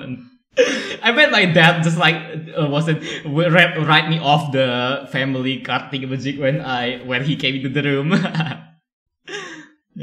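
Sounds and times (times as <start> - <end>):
breathy exhale: 9.3 - 9.8.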